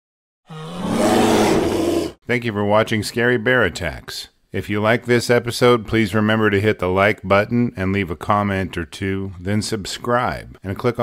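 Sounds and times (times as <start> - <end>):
bear roaring: 0.5 - 2.2.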